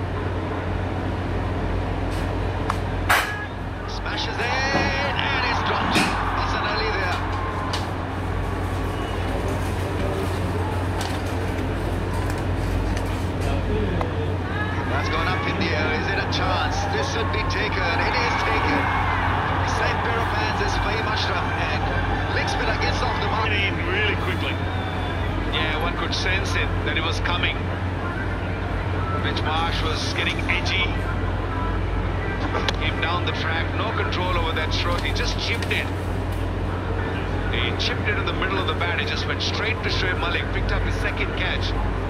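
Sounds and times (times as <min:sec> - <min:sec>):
constant low hum: 0:00.0 - 0:42.0
stadium crowd din: 0:00.0 - 0:42.0
crowd shouts: 0:03.9 - 0:09.5, 0:14.3 - 0:25.9.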